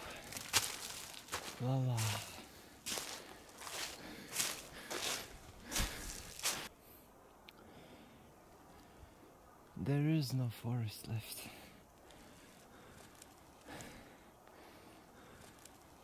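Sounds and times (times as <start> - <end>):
footsteps crunching on frozen leaves: 0.0 - 6.7
man saying oh: 1.6 - 2.3.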